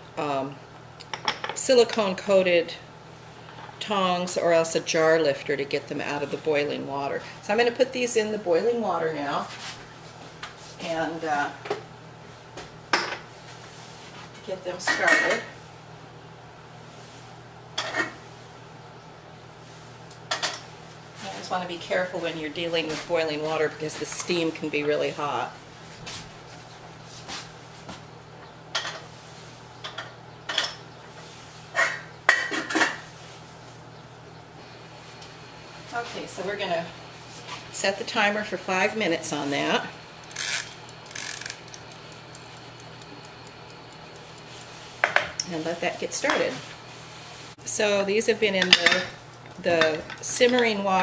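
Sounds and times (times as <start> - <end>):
steady low hum: 0.0 - 51.0.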